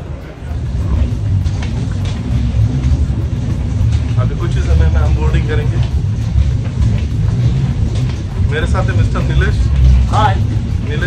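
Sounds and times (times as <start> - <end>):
loud low rumble: 0.0 - 11.0.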